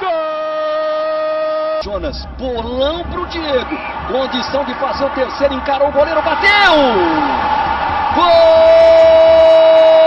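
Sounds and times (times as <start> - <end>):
man shouting goal cry: 8.1 - 10.0.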